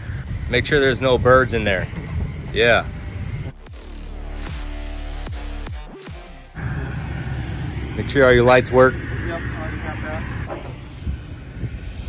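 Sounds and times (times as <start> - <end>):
electronic background music: 0.0 - 12.0
steady low hum: 0.0 - 12.0.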